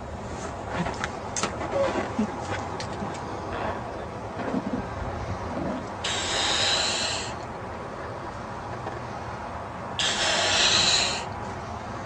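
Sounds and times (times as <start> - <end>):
breath blowing up balloon: 5.5 - 7.4, 10.0 - 11.3.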